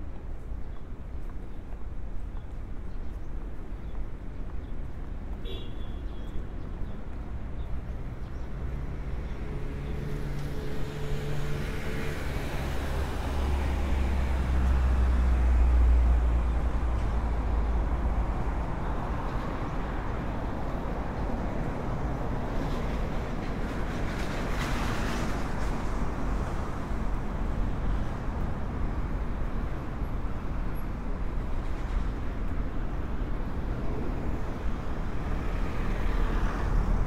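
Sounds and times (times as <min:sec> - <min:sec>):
city traffic noise: 0:00.0 - 0:37.0.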